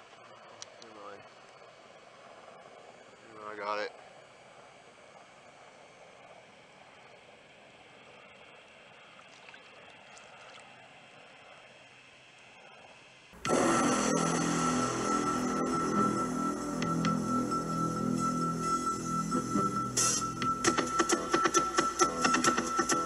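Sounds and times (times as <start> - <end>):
loud background music: 13.4 - 23.0.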